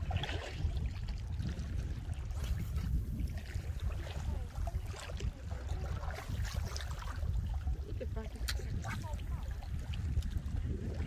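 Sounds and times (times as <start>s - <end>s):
waves lapping against rocks: 0.0s - 11.0s
wind on microphone: 0.0s - 11.0s.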